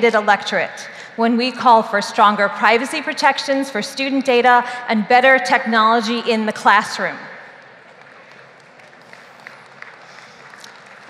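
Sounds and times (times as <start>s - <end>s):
audience applauding quietly: 7.6s - 11.0s
separate claps: 7.8s - 11.0s.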